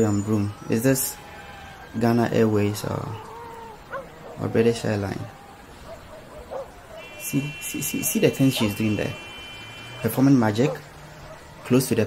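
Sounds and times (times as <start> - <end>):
faint animal whines: 0.2 - 6.7.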